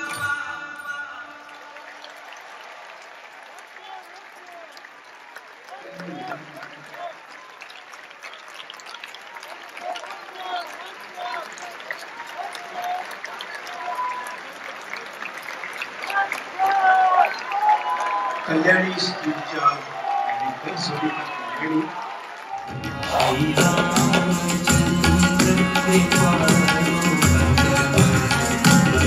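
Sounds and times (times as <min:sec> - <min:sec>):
music: 0:00.0 - 0:01.6, 0:22.7 - 0:29.0
audience applauding: 0:00.0 - 0:29.0
people talking: 0:05.8 - 0:07.2, 0:18.5 - 0:19.8, 0:20.4 - 0:22.0, 0:23.0 - 0:24.5.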